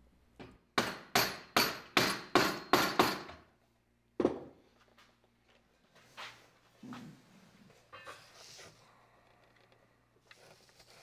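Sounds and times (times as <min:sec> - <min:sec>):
hammer striking wood: 0:00.4 - 0:03.4.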